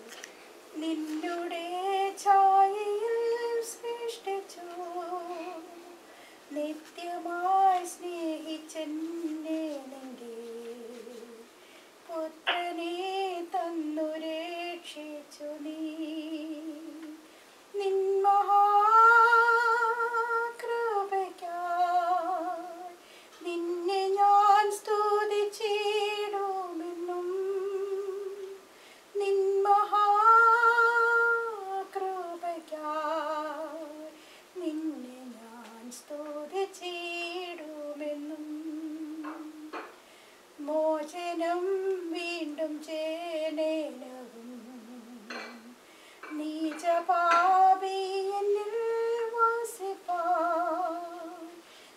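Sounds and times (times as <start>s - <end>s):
woman singing with vibrato: 0.7s - 40.0s, 40.6s - 51.7s.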